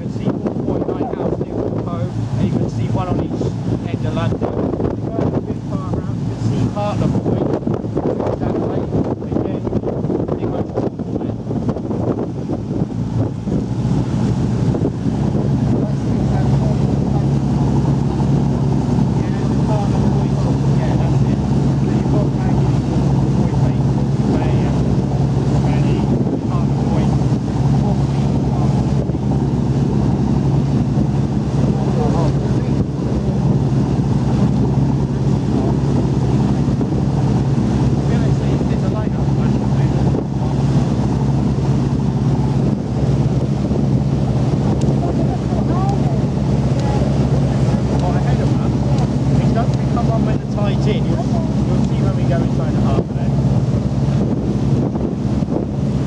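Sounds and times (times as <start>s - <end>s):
boat engine droning: 0.0s - 56.0s
wind buffeting microphone: 0.0s - 56.0s.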